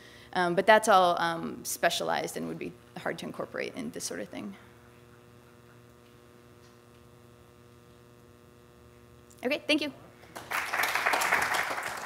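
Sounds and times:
faint electrical mains hum: 0.0 - 12.0.

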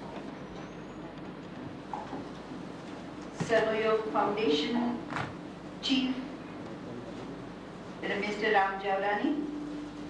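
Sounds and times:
lecture hall background noise: 0.0 - 10.0.

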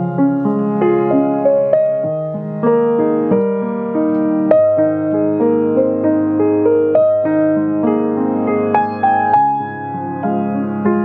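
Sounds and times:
piano chords: 0.0 - 11.0.

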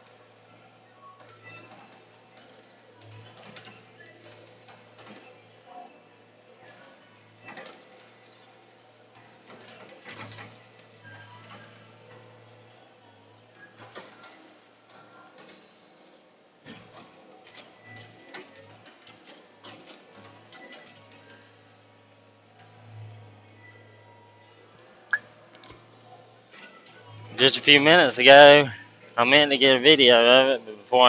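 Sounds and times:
loader engine and hydraulics: 0.0 - 29.2.

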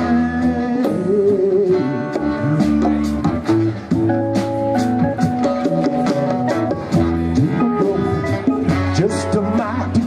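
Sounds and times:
electric bass: 0.0 - 10.0.

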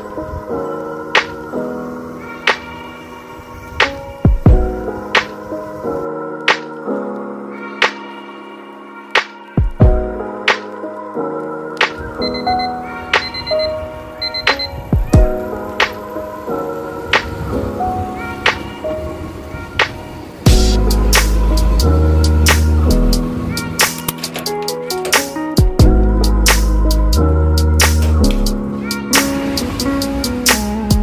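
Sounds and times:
background music: 0.0 - 31.0
alarm clock beeping: 12.2 - 14.8
deep bass notes: 20.5 - 23.3, 25.8 - 28.6.

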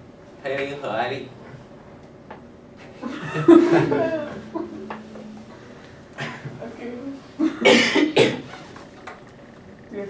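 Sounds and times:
person coughing: 7.4 - 8.5.

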